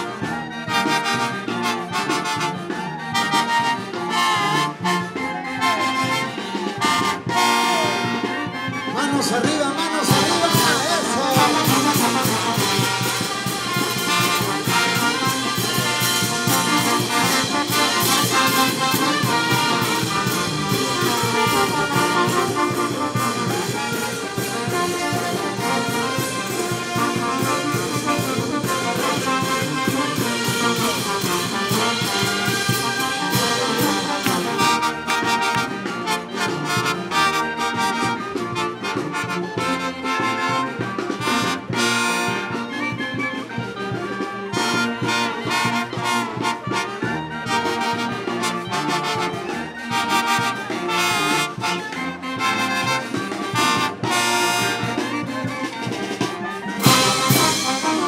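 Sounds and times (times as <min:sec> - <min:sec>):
brass band playing: 0:00.0 - 0:58.0
drums and cymbals: 0:00.0 - 0:58.0.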